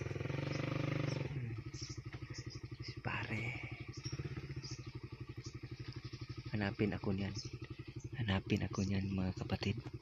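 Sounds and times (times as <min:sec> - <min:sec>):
small motorcycle engine idling: 0:00.0 - 0:10.0.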